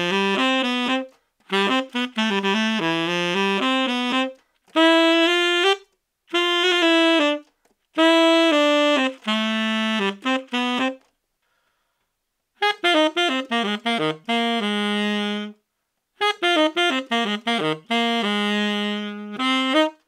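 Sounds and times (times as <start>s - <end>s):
tenor saxophone melody: 0.0s - 11.9s, 12.5s - 20.0s
player breathing: 11.3s - 12.2s.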